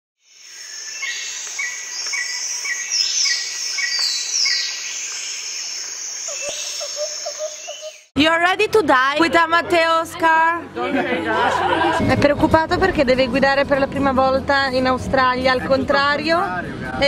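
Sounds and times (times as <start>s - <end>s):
birds calling: 0.3s - 8.1s
low bird chirps: 0.3s - 8.1s.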